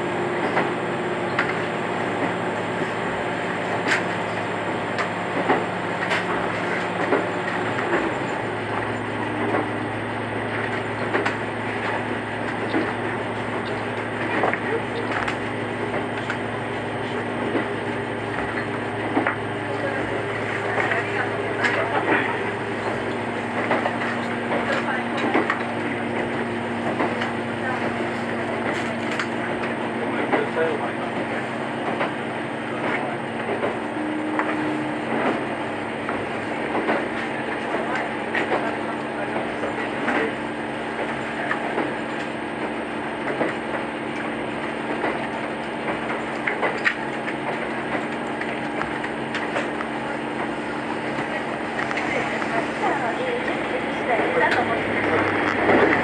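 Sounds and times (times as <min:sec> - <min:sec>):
railcar engine running hum: 0:00.0 - 0:56.0.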